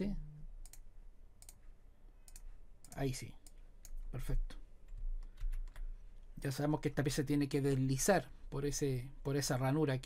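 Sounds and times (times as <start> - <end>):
computer mouse clicking: 0.6 - 4.0, 4.8 - 6.3.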